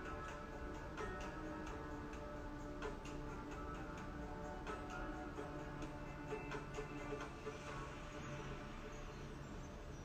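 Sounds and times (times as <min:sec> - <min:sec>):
soft meditation music: 0:00.0 - 0:10.0.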